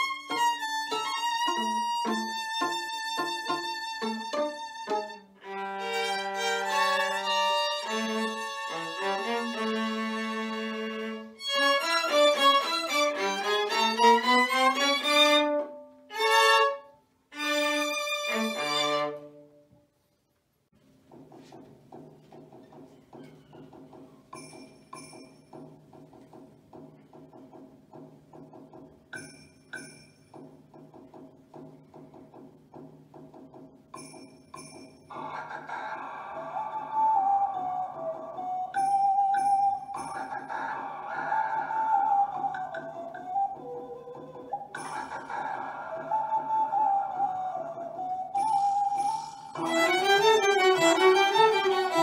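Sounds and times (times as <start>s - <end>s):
quiet music with light ticks: 0.0s - 16.9s, 37.0s - 40.7s, 42.2s - 45.1s
bowed string trio playing: 0.0s - 19.4s, 49.6s - 52.0s.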